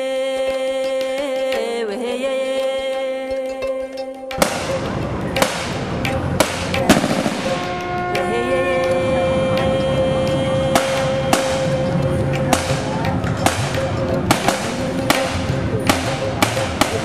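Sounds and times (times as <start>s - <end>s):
rifle shots: 6.9s - 7.8s.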